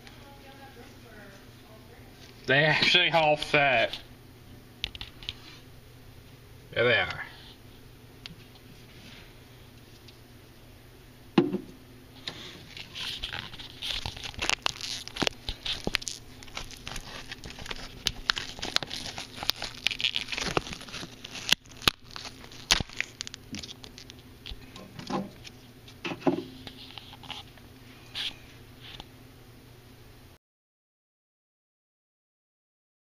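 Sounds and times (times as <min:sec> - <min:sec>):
knock: 0:11.4 - 0:11.7
camera handling rustle: 0:12.7 - 0:24.1.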